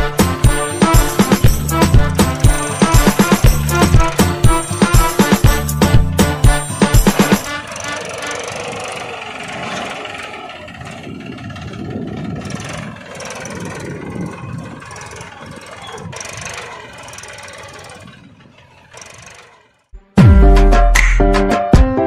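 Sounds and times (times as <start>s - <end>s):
small tractor motor running: 0.0s - 20.0s.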